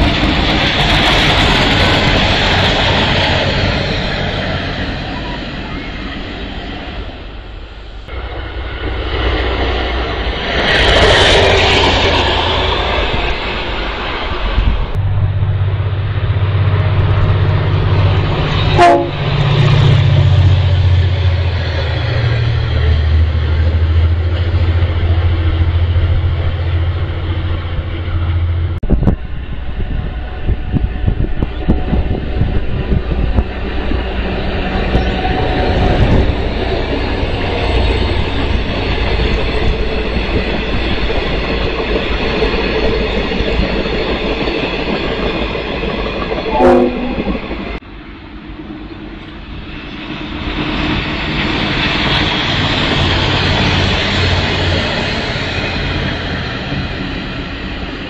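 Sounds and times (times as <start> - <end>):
train engine drone: 0.0 - 58.0.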